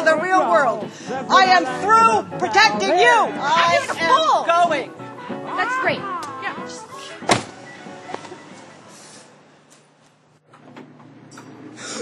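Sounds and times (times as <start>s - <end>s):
steady background noise: 0.0s - 12.0s
car door slamming: 7.2s - 8.4s.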